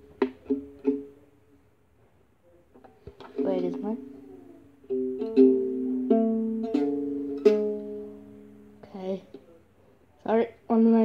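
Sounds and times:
ukulele strums: 0.0s - 1.3s, 2.8s - 9.4s.

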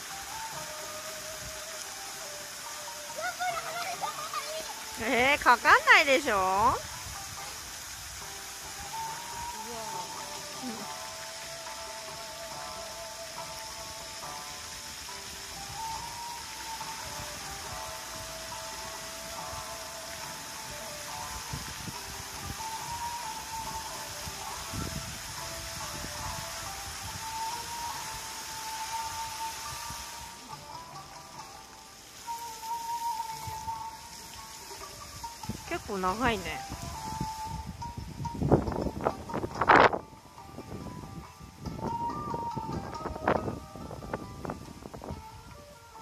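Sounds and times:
fountain jets spraying water: 0.0s - 46.0s
melody over loudspeakers: 8.5s - 46.0s.

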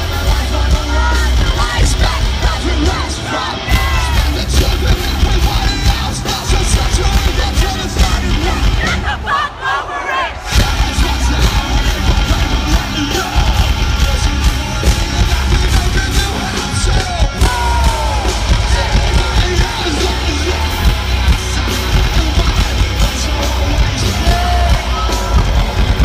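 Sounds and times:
live metal band playing: 0.0s - 9.3s, 10.4s - 26.0s
shouted vocal: 0.4s - 14.3s, 15.2s - 26.0s.

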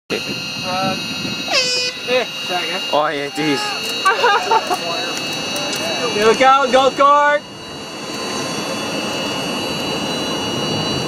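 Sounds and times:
air horn blast: 0.1s - 6.8s.

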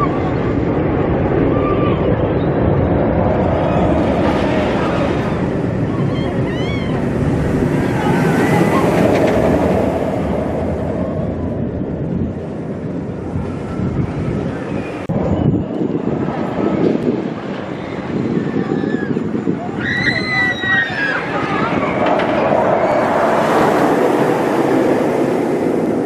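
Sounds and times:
roller coaster train rushing: 0.0s - 26.0s
wind on microphone: 0.0s - 26.0s.

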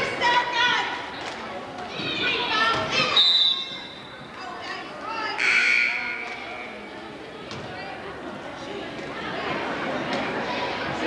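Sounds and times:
crowd shouting and chatter: 0.0s - 11.0s
referee's whistle blast: 3.1s - 4.0s.

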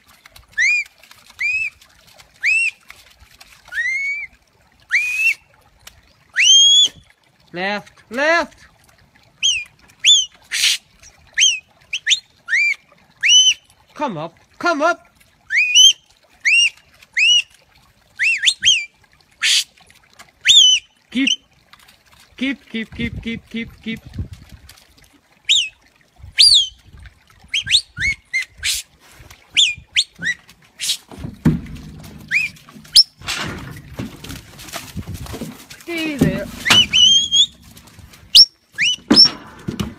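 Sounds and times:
short sharp whistles: 29.6s - 31.1s, 36.7s - 37.6s
short loud whistle notes: 36.7s - 37.6s.

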